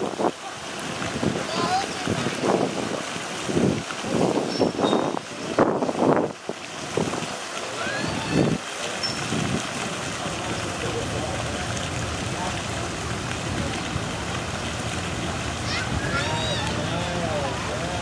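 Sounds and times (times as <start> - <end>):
steady outdoor hiss: 0.0 - 18.0
indistinct chatter of voices: 15.1 - 18.0.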